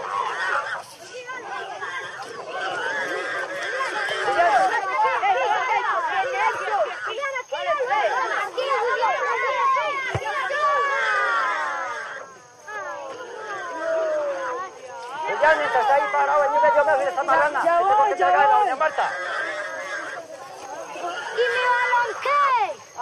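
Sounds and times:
children shouting: 0:00.0 - 0:23.0.

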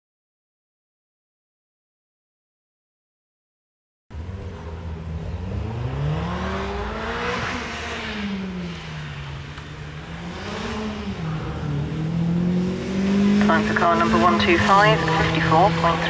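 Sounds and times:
car engine revving hard: 0:04.1 - 0:16.0.

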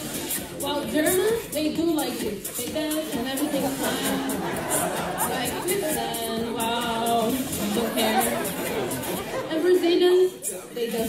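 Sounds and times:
audience chatter: 0:00.0 - 0:11.0
woman vocalizing through microphone: 0:05.2 - 0:08.7.

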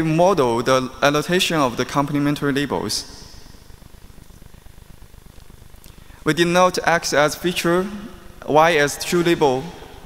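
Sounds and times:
faint hiss: 0:00.0 - 0:10.0.

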